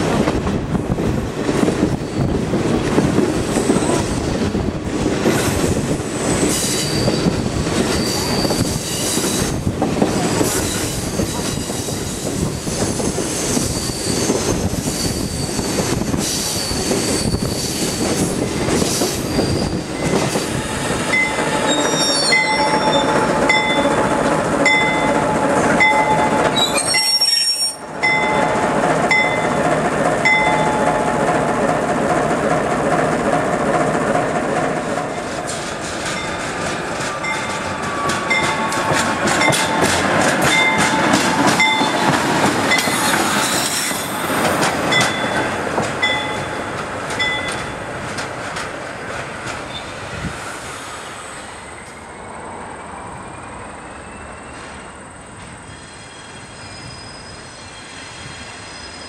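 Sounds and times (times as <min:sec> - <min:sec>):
train wheels rumbling on rails: 0:00.0 - 0:59.0
wheel squeals: 0:06.1 - 0:09.6, 0:10.4 - 0:23.9, 0:25.8 - 0:28.4, 0:40.5 - 0:45.4, 0:55.6 - 0:59.0
regular rail clicks: 0:17.0 - 0:50.8.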